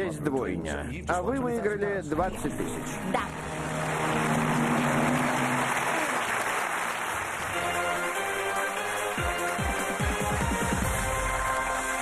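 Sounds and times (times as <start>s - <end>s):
game show music cue: 2.4s - 12.0s
studio audience applauding: 3.3s - 12.0s.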